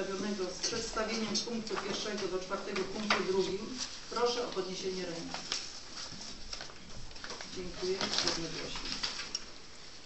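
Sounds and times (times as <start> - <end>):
papers rustling: 0.0 - 10.0.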